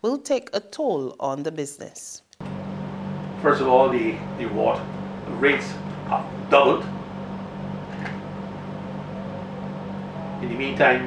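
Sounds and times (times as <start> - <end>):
low machine hum: 2.4 - 11.0.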